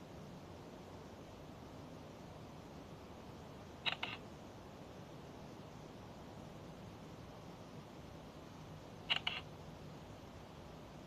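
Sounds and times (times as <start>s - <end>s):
faint hiss: 0.0s - 11.0s
sharp clicks: 3.9s - 4.2s, 9.1s - 9.5s.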